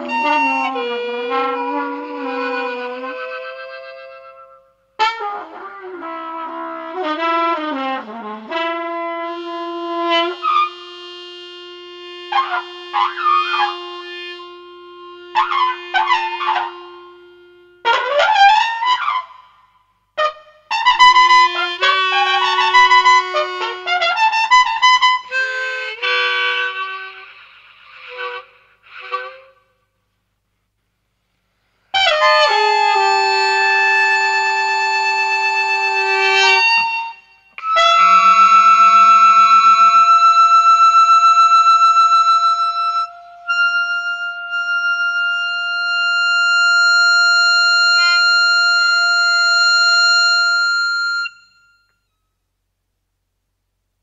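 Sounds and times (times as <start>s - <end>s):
trumpet playing: 0.0s - 19.6s, 20.2s - 30.0s, 31.9s - 52.1s.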